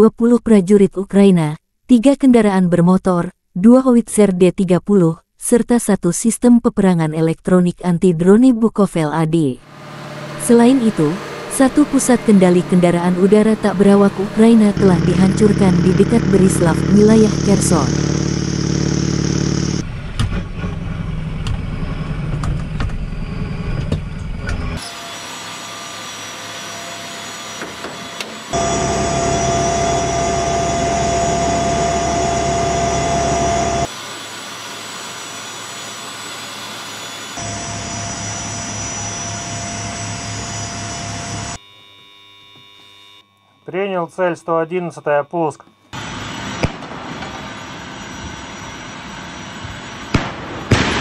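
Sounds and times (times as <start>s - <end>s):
heavy vehicle engine rumbling: 9.6s - 25.4s, 26.3s - 33.9s
machinery noise with high whine: 9.6s - 51.0s.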